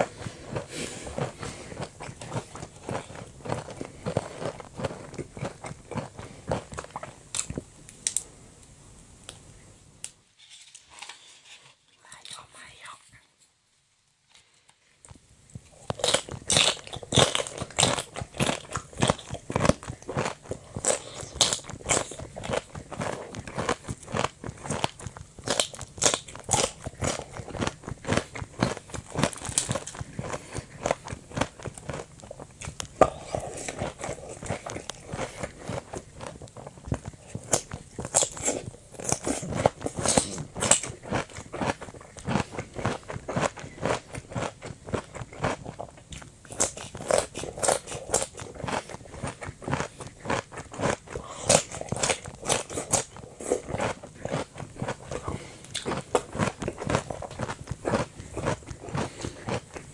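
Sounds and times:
chewing crunchy salad: 0.0 - 8.2, 15.5 - 59.9.

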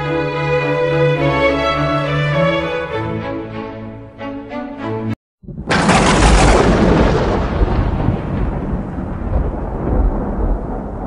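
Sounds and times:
rolling thunder over speakers: 5.4 - 11.0.

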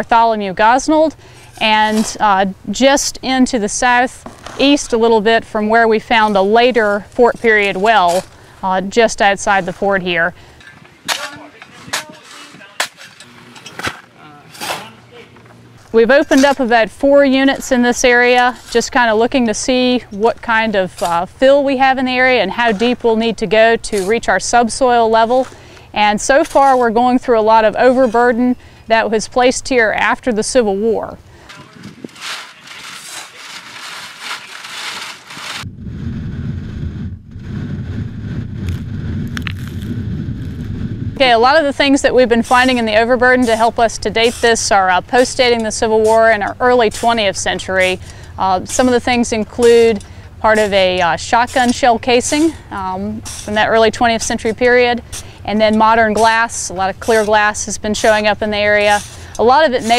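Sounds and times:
shovel scraping packed dirt: 0.2 - 30.7, 31.4 - 35.7, 41.2 - 59.9
steady low rumble: 35.6 - 59.9.

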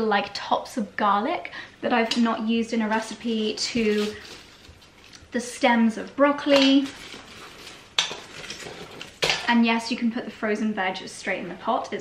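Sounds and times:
plastic bag handling noise: 2.8 - 5.2, 6.7 - 9.2
frozen scraps clattering into pot: 6.5 - 9.5.

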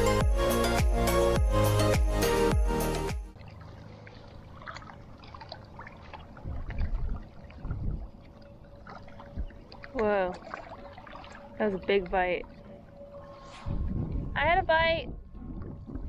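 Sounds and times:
water lapping: 3.3 - 14.6
wind rumble on microphone: 6.3 - 16.0.

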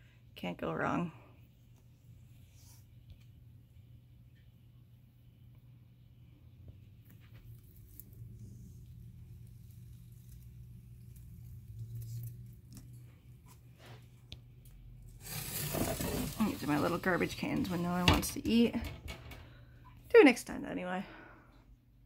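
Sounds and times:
steady low hum: 0.0 - 15.2
phone scraping along glass: 15.2 - 18.0.

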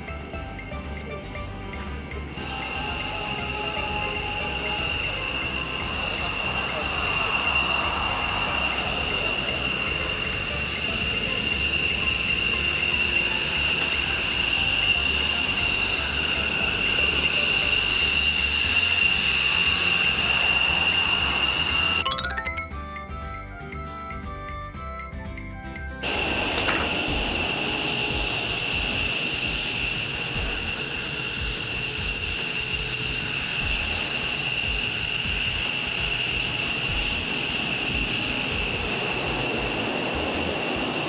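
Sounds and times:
jet engines whining: 26.1 - 41.0.

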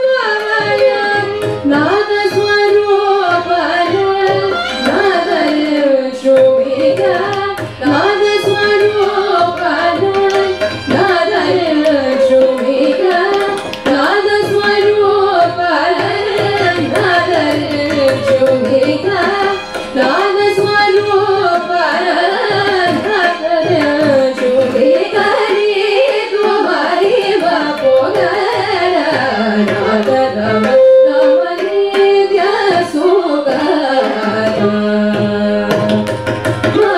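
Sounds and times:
violin: 0.0 - 36.9
women singing: 0.0 - 36.9.

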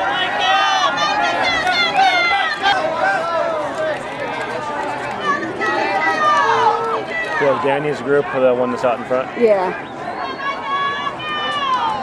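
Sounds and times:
faint crowd noise: 0.0 - 12.0.

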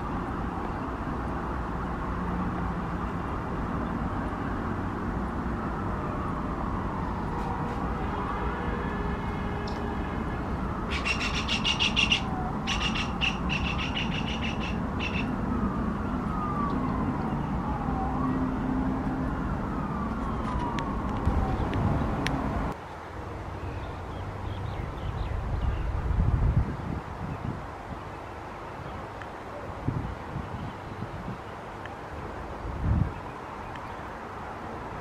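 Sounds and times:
distant siren wailing: 0.0 - 22.8
low traffic rumble: 0.0 - 35.0
rapid high chattering call: 10.9 - 15.3.

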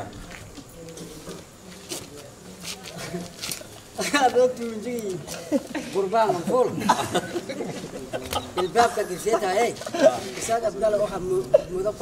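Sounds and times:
quiet low talk: 0.0 - 12.0.

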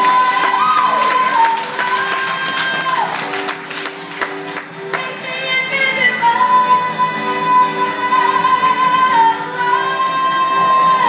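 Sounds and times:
woman singing into a microphone: 0.0 - 3.2, 4.9 - 11.0
crowd noise: 0.0 - 11.0
instrumental accompaniment: 0.0 - 11.0.

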